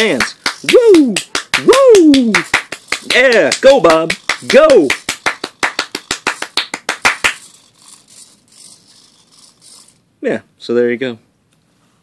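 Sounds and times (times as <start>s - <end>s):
fast hand clapping: 0.0s - 7.5s
small servos whirring: 7.2s - 10.1s.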